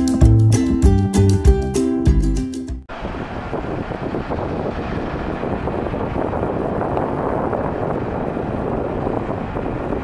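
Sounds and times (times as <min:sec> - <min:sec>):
airport ground equipment: 0:02.9 - 0:10.0
distant jet engines: 0:02.9 - 0:10.0
wind on microphone: 0:02.9 - 0:10.0.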